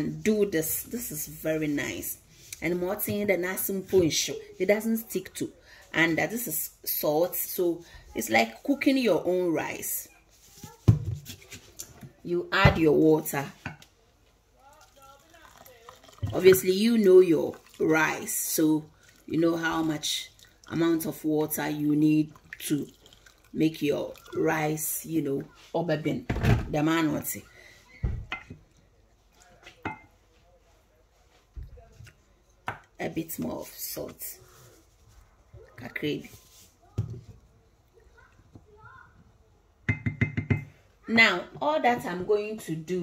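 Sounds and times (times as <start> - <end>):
container knocking on countertop: 39.9 - 40.7.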